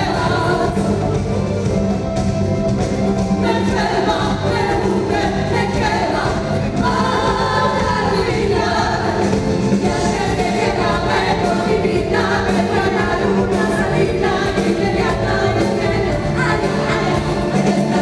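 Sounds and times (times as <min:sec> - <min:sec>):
women singing a ballad: 0:00.0 - 0:01.4, 0:03.4 - 0:18.0
band accompaniment: 0:00.0 - 0:18.0.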